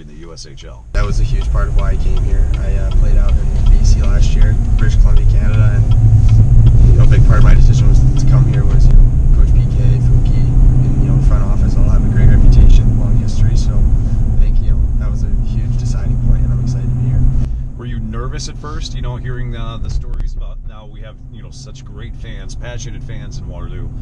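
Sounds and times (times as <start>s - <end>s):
man talking: 0.0s - 24.0s
pickup truck cabin rumble: 1.0s - 20.6s.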